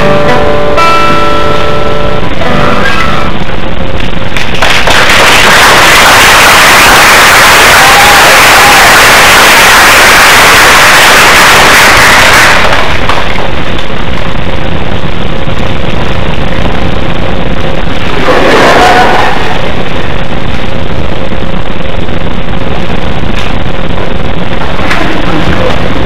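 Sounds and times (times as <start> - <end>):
audience applauding: 4.3 - 13.8.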